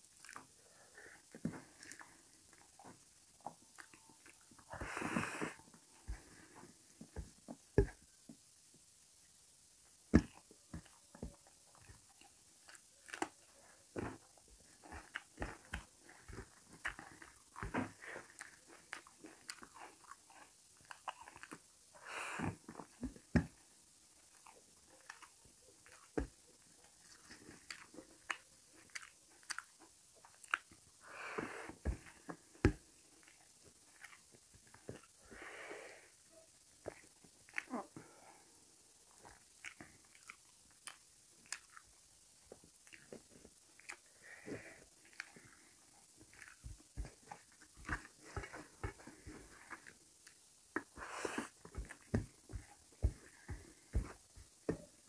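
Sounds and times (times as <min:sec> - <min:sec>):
person chewing food: 0:00.0 - 0:07.2, 0:10.2 - 0:35.3, 0:36.8 - 0:38.3, 0:39.1 - 0:55.0
person drawing breath: 0:31.0 - 0:31.9, 0:35.2 - 0:36.2.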